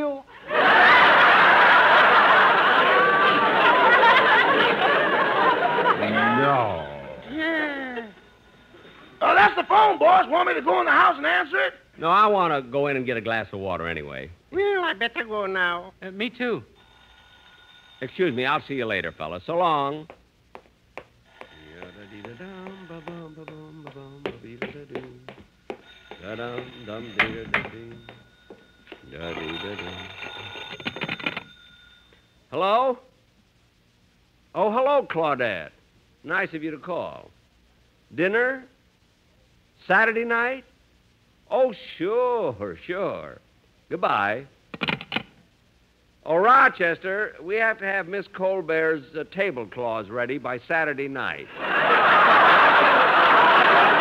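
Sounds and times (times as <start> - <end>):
voices: 0.0 - 16.4, 21.4 - 25.4, 26.1 - 28.2
studio audience laughing: 0.4 - 6.7, 51.5 - 54.0
telephone bell ringing: 16.8 - 19.2, 21.4 - 24.8, 25.8 - 32.4
sharp knocks: 22.2 - 28.2.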